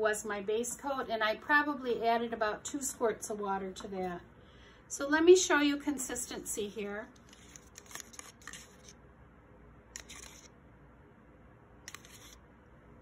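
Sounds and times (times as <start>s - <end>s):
stir stick scraping plastic cup: 7.2s - 8.9s, 11.9s - 12.4s.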